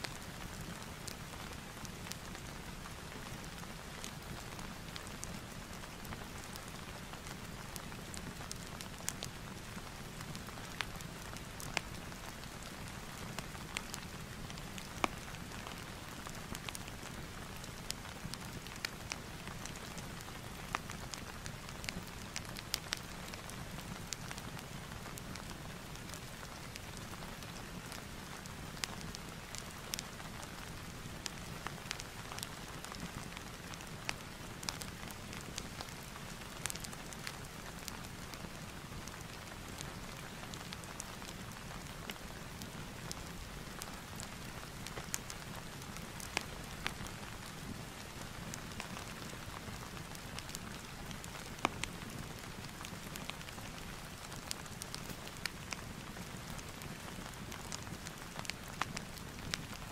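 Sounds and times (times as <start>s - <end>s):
steady rain falling: 0.0s - 59.9s
wood fire crackling: 0.0s - 59.9s.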